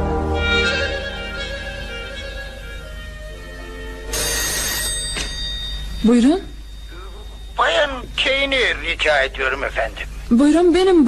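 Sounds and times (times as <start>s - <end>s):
telephone bell ringing: 4.1s - 8.7s.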